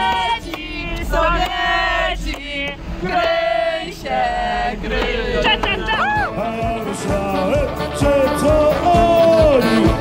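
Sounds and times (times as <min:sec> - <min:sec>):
voices singing long notes: 0:00.0 - 0:10.0.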